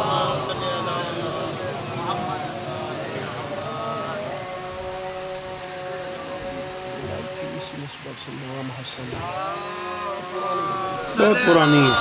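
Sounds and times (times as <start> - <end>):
loudspeaker feedback ringing: 10.1 - 12.0.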